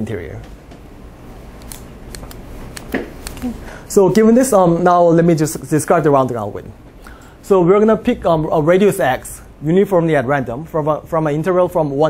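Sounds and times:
steady room noise: 0.0s - 12.0s.

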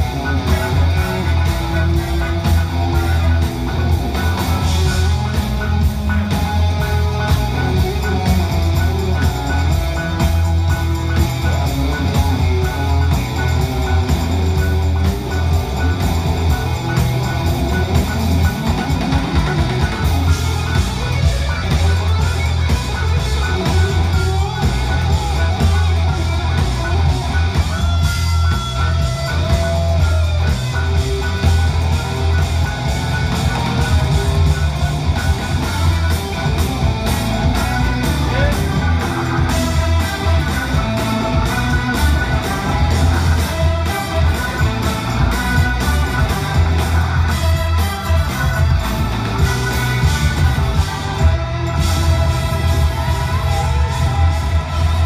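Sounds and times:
electric guitar: 0.0s - 55.0s
heavy bass: 0.0s - 55.0s
rock band music over loudspeakers: 0.0s - 55.0s
steady drum beat: 0.0s - 55.0s.

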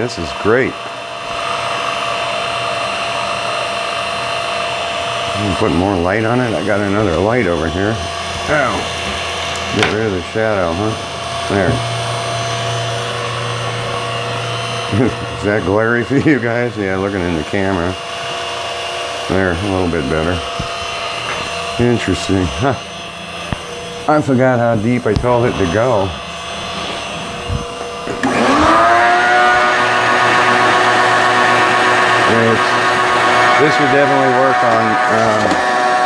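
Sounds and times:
end mill cutting wood: 0.0s - 36.0s
mill spindle and motors humming: 0.0s - 36.0s.

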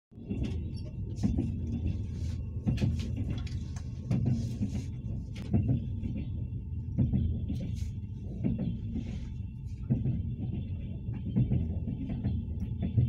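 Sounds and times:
train rumbling inside carriage: 0.1s - 13.0s.

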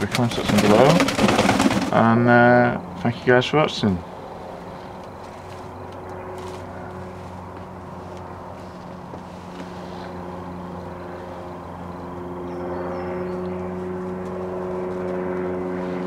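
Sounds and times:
engine humming: 0.0s - 16.0s.

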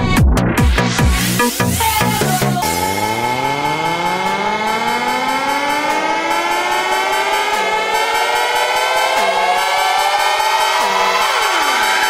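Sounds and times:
synth riser gliding upward: 0.4s - 12.0s.

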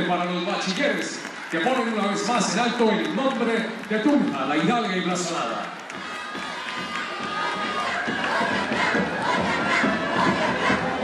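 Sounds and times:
crowd cheering and chatter: 0.0s - 11.0s
children singing and chanting: 6.0s - 11.0s.

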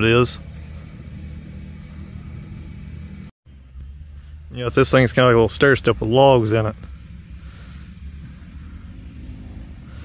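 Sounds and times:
low engine rumble: 0.0s - 10.0s.

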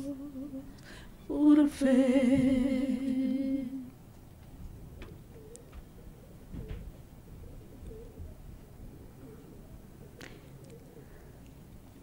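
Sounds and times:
women singing a hymn: 0.0s - 4.0s.

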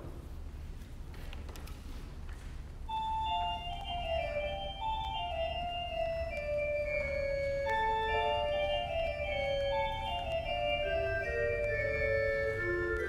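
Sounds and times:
organ playing slow prelude: 2.9s - 13.0s.

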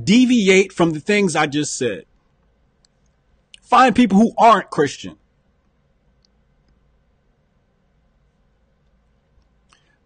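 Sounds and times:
man speaking: 0.0s - 2.0s, 3.6s - 5.2s.

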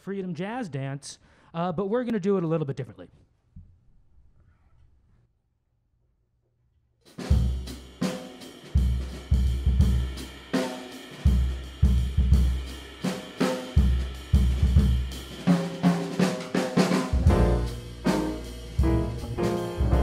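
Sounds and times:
drum kit: 7.1s - 20.0s
double-bass notes: 17.1s - 20.0s
piano: 17.1s - 20.0s.

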